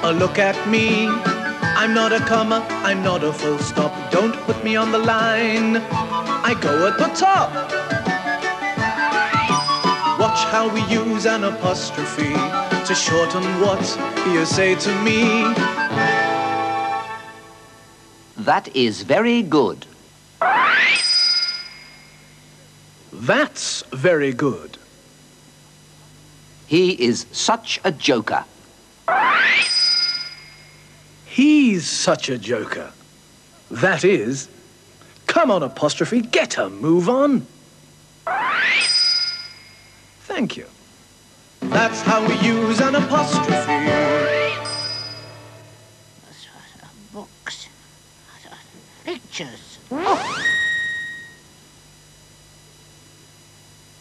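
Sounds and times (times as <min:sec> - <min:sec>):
children's song: 0:00.0 - 0:16.2, 0:41.6 - 0:44.8
cartoon rising swoop: 0:20.4 - 0:21.6, 0:29.1 - 0:30.2, 0:38.3 - 0:39.3, 0:49.9 - 0:51.2
bell-like ding: 0:29.6 - 0:30.8, 0:38.8 - 0:39.8, 0:44.6 - 0:45.7
short squeaky sounds: 0:50.0 - 0:51.4.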